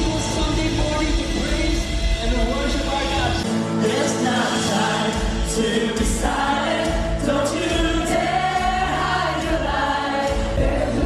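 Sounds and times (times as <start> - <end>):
sustained bass notes: 0.0 - 9.7
band accompaniment: 0.0 - 11.0
voices singing worship song: 3.4 - 11.0.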